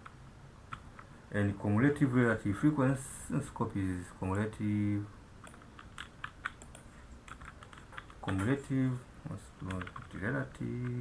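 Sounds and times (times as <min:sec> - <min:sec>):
keyboard typing: 0:00.0 - 0:01.1, 0:05.4 - 0:08.7, 0:09.6 - 0:11.0.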